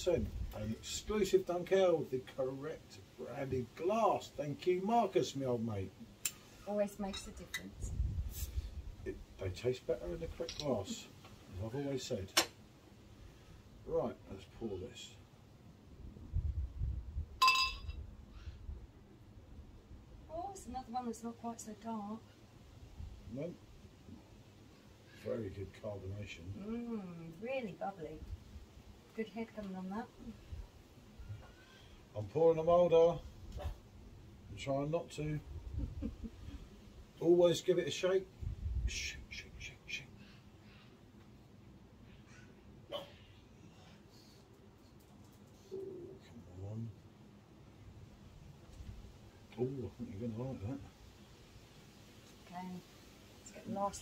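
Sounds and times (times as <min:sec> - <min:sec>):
glass bottle clinking on glass: 0:17.4 - 0:18.0.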